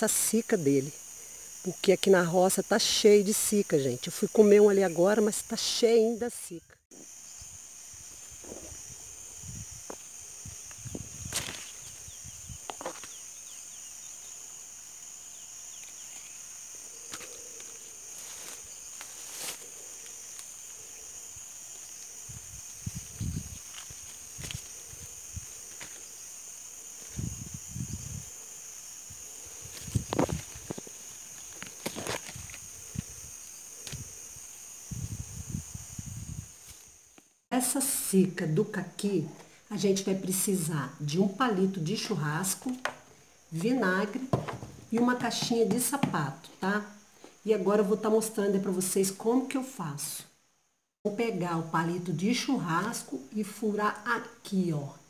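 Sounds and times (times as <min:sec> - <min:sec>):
high-pitched insect drone: 0:00.0 - 0:39.1
leaves and branches rustling: 0:07.0 - 0:37.4.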